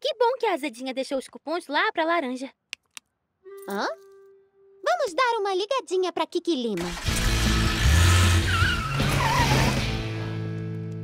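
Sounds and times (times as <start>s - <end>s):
cartoon car engine rumble: 6.8s - 10.3s
background music: 6.8s - 11.0s
tyre squeal: 8.3s - 9.9s.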